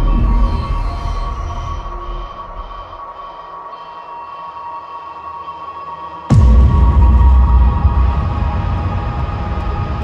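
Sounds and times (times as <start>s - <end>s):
held high synth drone: 0.0s - 9.5s.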